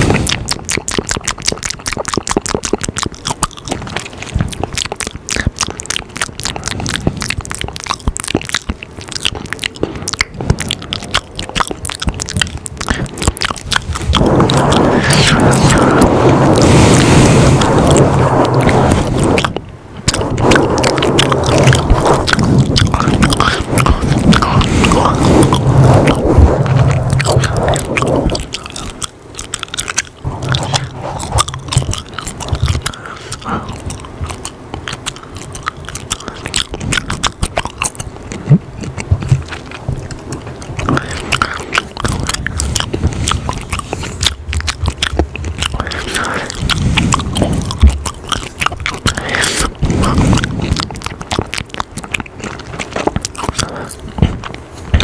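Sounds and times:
gum chewing mouth sounds: 0.0s - 55.0s.

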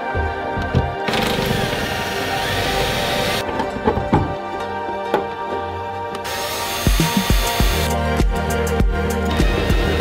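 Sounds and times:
background music: 0.0s - 10.0s
cordless drill driving screw: 1.1s - 3.4s, 6.2s - 7.9s.

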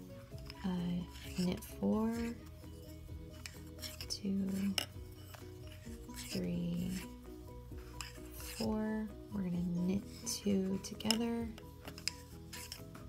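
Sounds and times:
soft background music: 0.0s - 13.0s
yarn rubbing on needles: 0.0s - 13.0s
knitting needles clicking: 10.2s - 12.8s.

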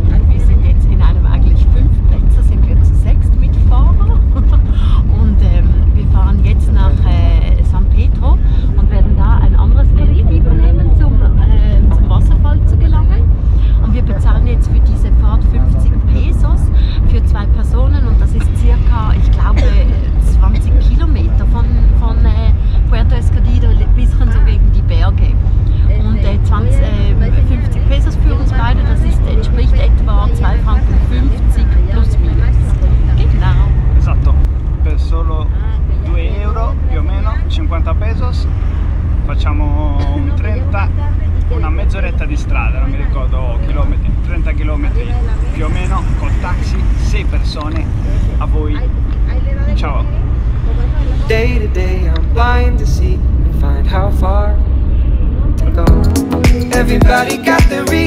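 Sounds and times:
people talking: 0.0s - 38.5s, 39.3s - 54.7s, 55.5s - 58.0s
taxi engine and road noise: 0.0s - 58.0s.

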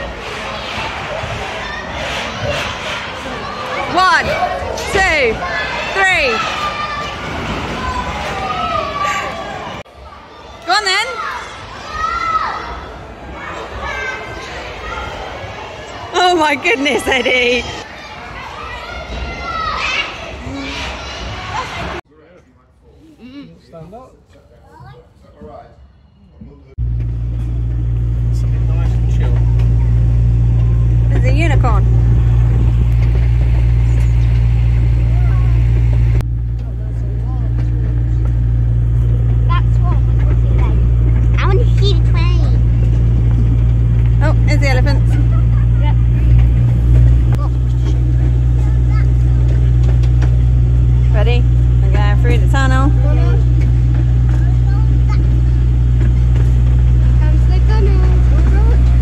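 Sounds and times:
miniature train engine droning: 26.8s - 59.0s.

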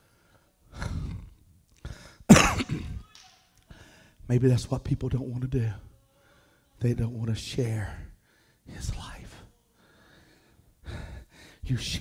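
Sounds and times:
man coughing into a microphone: 2.3s - 3.0s.

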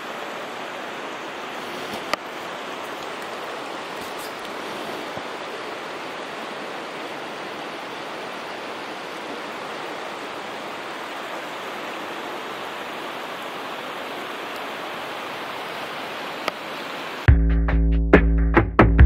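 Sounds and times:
running water rushing: 0.0s - 17.3s.

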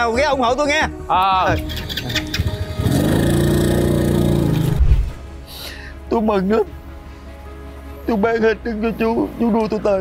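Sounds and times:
motorbike engine revving: 2.2s - 4.9s.

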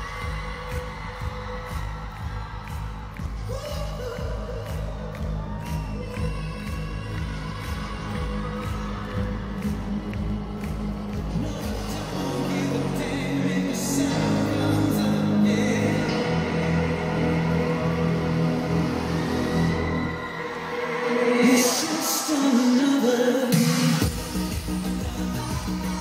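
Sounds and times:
crowd cheering: 0.0s - 24.2s
person singing: 0.0s - 26.0s.

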